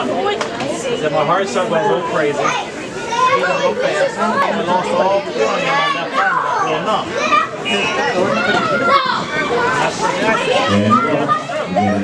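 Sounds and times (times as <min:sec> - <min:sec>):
crowd of voices chattering: 0:00.0 - 0:12.0.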